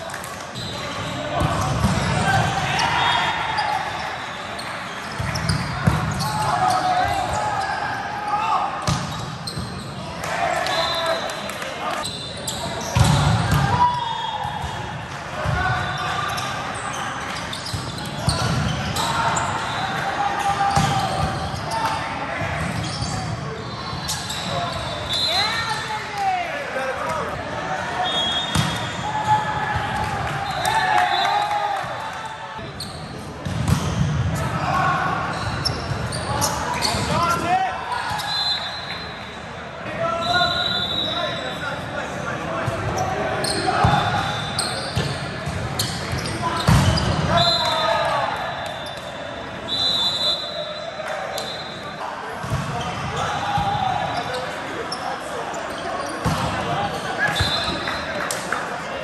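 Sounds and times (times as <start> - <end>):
shoe squeaks on court: 3.5 - 7.8, 8.9 - 9.9, 12.0 - 13.3, 15.9 - 19.9, 22.6 - 25.6, 32.8 - 34.1, 35.3 - 37.1, 42.9 - 47.3, 54.0 - 58.2.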